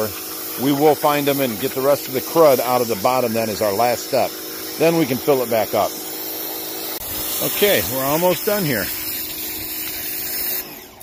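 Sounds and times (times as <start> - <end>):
pressure washer spraying: 0.0 - 11.0.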